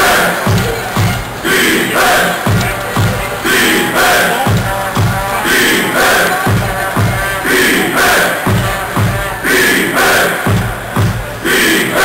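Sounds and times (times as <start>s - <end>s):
crowd chanting and shouting: 0.0s - 12.0s
loud music with pulsing beat: 0.0s - 12.0s.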